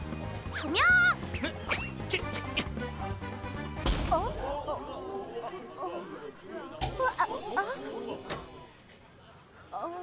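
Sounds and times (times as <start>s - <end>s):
crowd murmuring and chattering: 4.2s - 10.0s.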